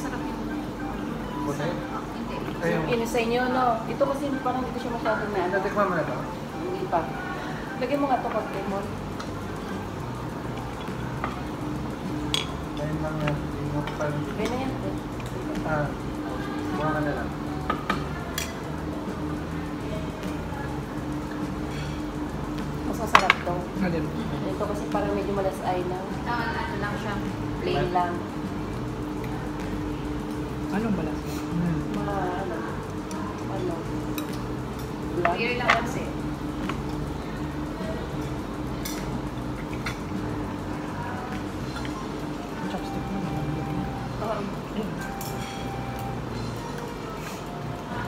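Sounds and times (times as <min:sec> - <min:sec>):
faint background music: 0:00.0 - 0:48.0
steady low hum: 0:00.0 - 0:48.0
cutlery clicking against plates: 0:12.2 - 0:15.4, 0:17.7 - 0:18.6, 0:34.1 - 0:36.0, 0:38.1 - 0:40.2.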